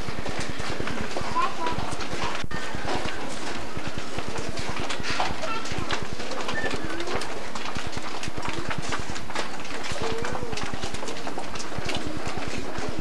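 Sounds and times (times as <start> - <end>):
faint murmuring voices: 0.0 - 13.0
footsteps on a stage: 0.0 - 13.0.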